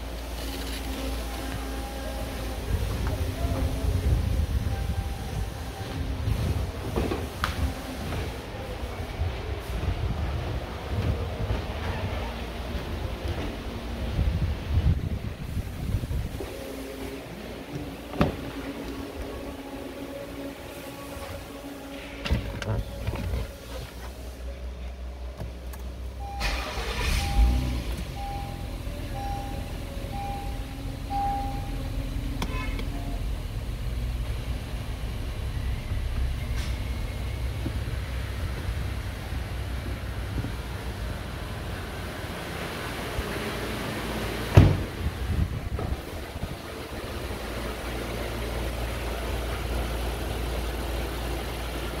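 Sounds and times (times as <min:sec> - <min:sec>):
car engine idling: 0:13.2 - 0:52.0
dashboard warning chime beeping: 0:26.2 - 0:32.0.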